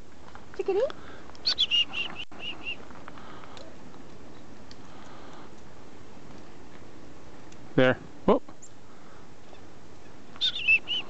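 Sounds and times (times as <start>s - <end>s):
chickadee call: 1.4s - 2.8s, 10.4s - 11.0s.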